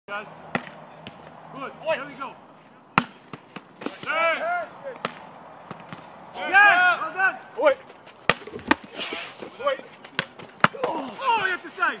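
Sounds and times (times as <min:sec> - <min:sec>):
football kicked and caught thuds: 0:10.0 - 0:11.1.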